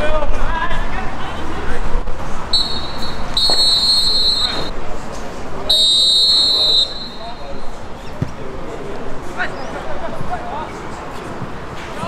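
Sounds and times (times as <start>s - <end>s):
referee's whistle blasts: 2.5s - 4.7s, 5.7s - 7.6s.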